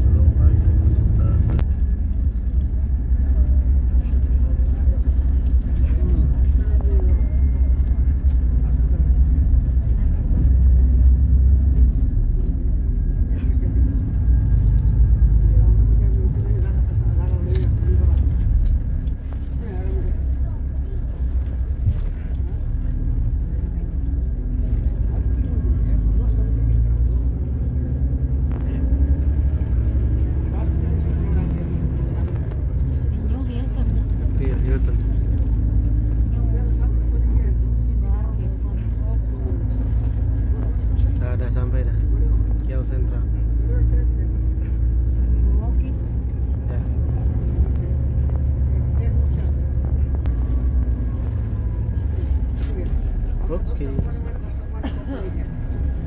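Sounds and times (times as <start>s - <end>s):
background voices: 0.0s - 56.0s
bus engine and road rumble: 0.0s - 56.0s.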